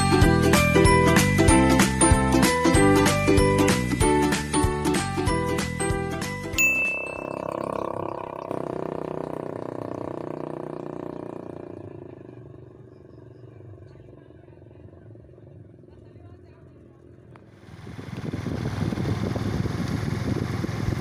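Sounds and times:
chiming bell-like jingle: 6.6s - 7.6s
short high ping: 6.6s - 8.6s
faint outdoor background noise: 10.8s - 18.1s.

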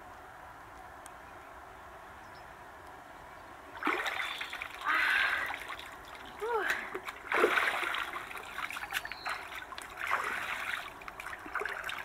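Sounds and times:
water splashing: 3.8s - 12.0s.

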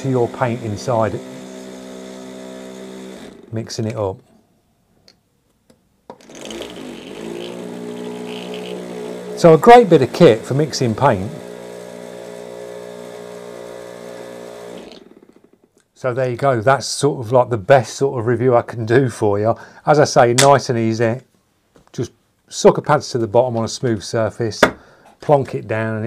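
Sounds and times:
vortex mixer motor humming: 0.0s - 3.5s, 6.2s - 15.6s.

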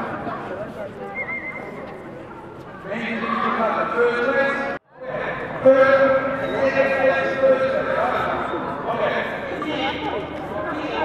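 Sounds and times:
man speaking over public address: 2.9s - 11.0s.

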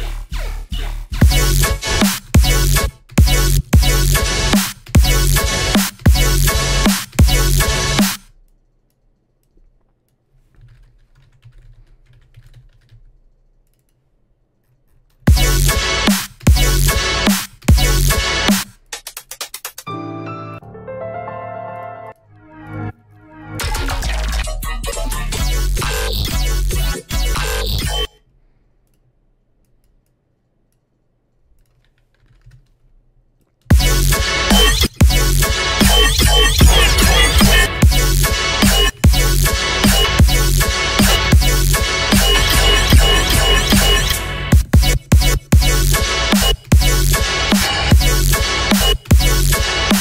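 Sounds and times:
typing on keyboard: 10.4s - 15.3s, 31.5s - 32.8s.

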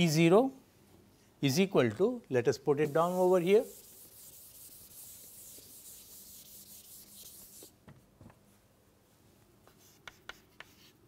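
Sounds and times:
scrubbing on a chalkboard: 2.8s - 7.7s.

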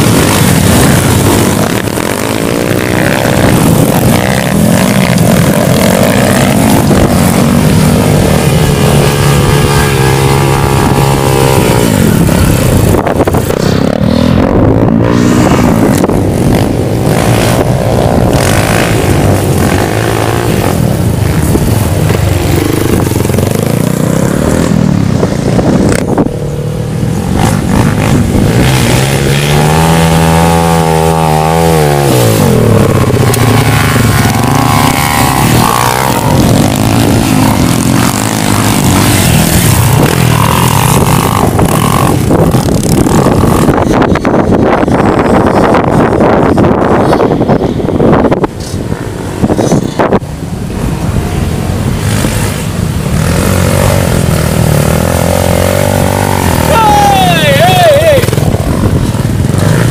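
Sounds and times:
engine revving: 0.0s - 47.3s, 48.1s - 59.9s
dirt bike engines running: 0.0s - 59.9s.

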